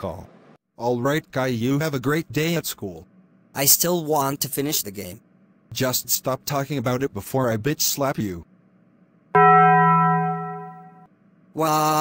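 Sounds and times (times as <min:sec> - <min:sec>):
cartoon slap clang ringing: 0:09.4 - 0:11.1.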